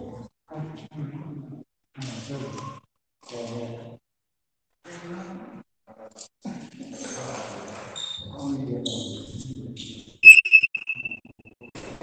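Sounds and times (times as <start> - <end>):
high-pitched ringing tone: 10.2 - 11.3.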